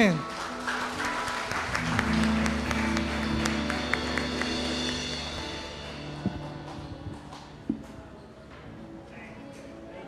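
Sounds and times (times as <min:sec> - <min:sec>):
people clapping: 0:00.0 - 0:08.0
band holding a sustained chord: 0:01.8 - 0:07.4.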